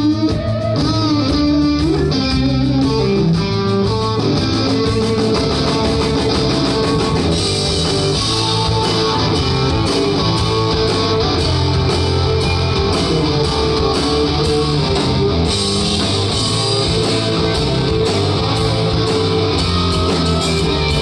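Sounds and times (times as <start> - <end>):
bass guitar: 0.0 - 21.0
drum kit: 0.0 - 21.0
electric guitars: 0.0 - 21.0.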